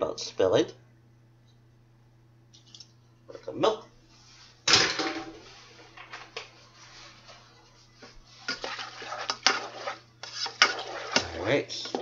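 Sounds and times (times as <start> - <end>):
spoon stirring pasta in saucepan: 5.4 - 12.0.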